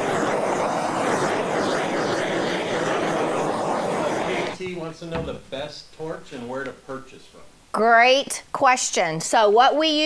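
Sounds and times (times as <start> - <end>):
torch flame hissing: 0.0 - 5.5.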